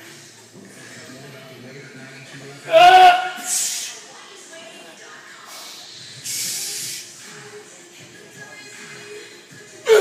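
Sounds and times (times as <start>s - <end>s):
forceful hissing breath: 3.4s - 4.0s, 5.5s - 7.2s.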